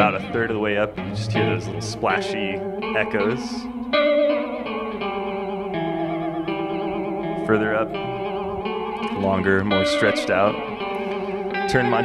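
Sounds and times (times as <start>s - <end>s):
electric guitar with chorus effect: 0.0s - 12.0s.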